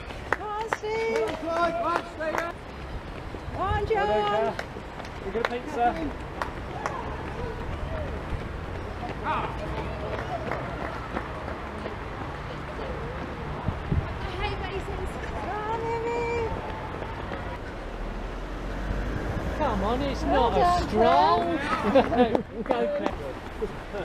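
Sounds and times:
people chatting and calling out: 0.0s - 18.0s, 19.5s - 24.0s.

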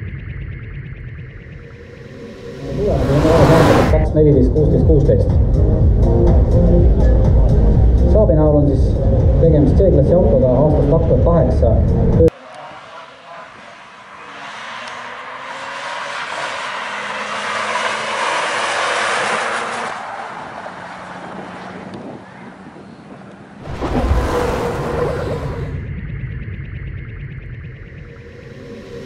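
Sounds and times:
car driving past: 1.8s - 4.0s, 23.6s - 25.8s.

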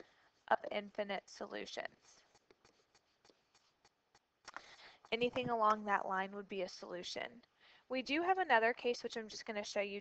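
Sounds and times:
stylus scratching on tablet: 0.0s - 7.4s, 8.2s - 10.0s.

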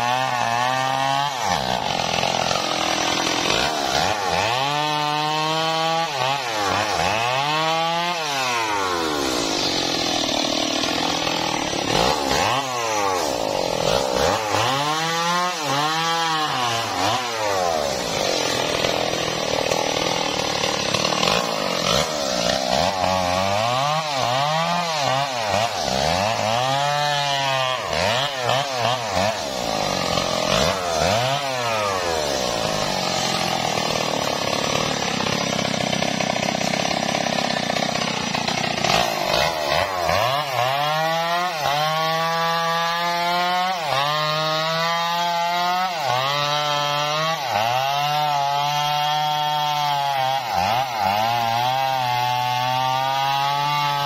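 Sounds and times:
chainsaw revving: 0.0s - 54.0s.

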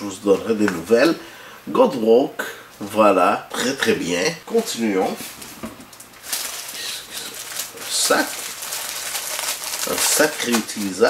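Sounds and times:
plastic packaging crinkling: 4.5s - 11.0s.

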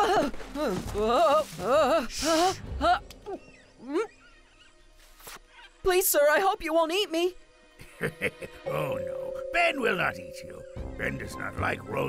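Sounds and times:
faint high chirping: 8.7s - 11.8s.

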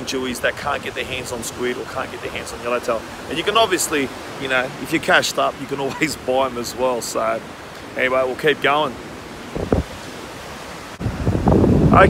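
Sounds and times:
ocean surf: 0.0s - 12.0s
wind noise on microphone: 9.4s - 12.0s.

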